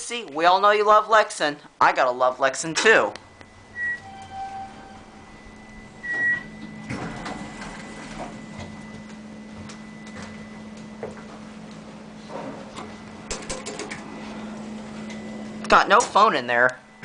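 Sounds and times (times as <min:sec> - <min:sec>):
elevator low hum: 0:01.6 - 0:17.0
electronic elevator tones: 0:02.6 - 0:13.3, 0:14.0 - 0:15.9.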